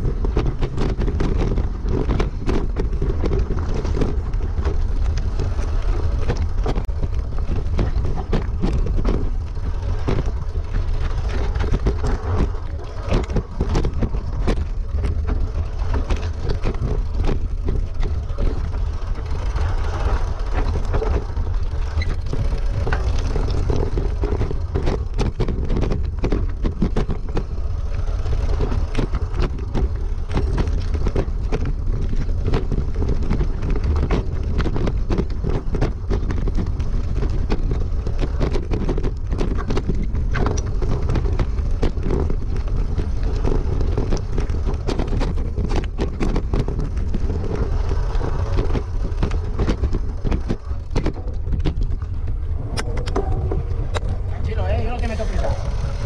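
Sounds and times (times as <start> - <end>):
bike rattling over stones: 0.0 - 56.0
wind rumble on microphone: 0.0 - 56.0.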